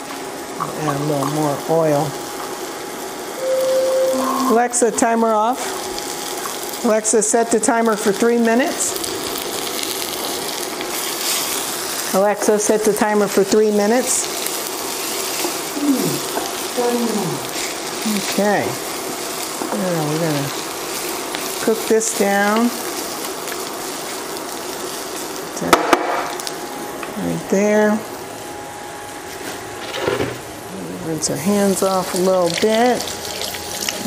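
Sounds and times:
vegetables sizzling in oil: 0:00.0 - 0:34.0.

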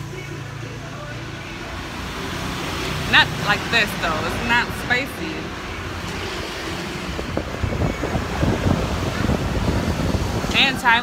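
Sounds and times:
street traffic: 0:00.0 - 0:11.0
wind buffeting microphone: 0:05.9 - 0:11.0.

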